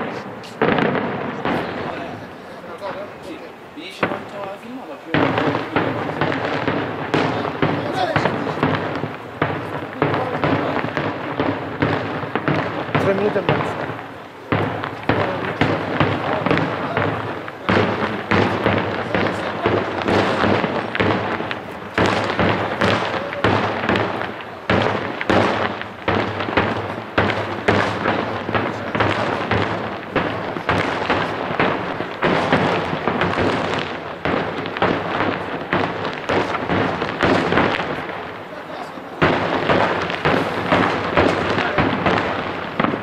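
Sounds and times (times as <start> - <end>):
fireworks bangs and cracks: 0.0 - 43.0.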